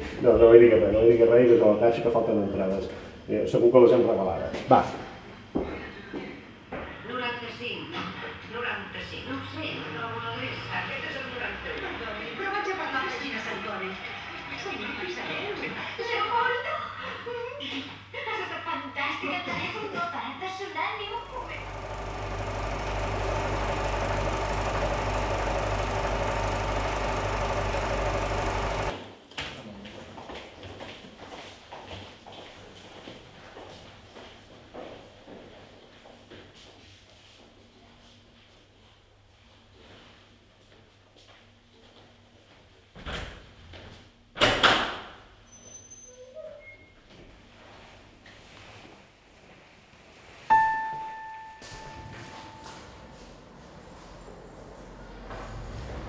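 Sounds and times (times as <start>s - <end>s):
film projector whirring: 21.1s - 29.0s.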